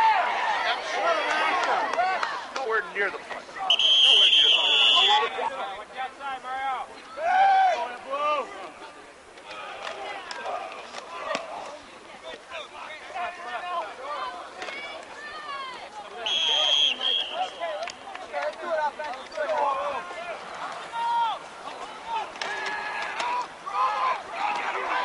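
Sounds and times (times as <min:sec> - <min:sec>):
many voices shouting: 0:00.0 - 0:02.5, 0:07.1 - 0:08.5, 0:19.6 - 0:25.0
referee's whistle blast: 0:03.7 - 0:05.3, 0:16.2 - 0:17.8.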